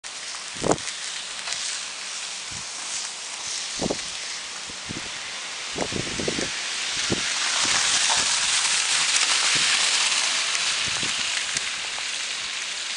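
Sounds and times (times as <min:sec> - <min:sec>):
car tyres hissing on slush: 0:00.0 - 0:12.9.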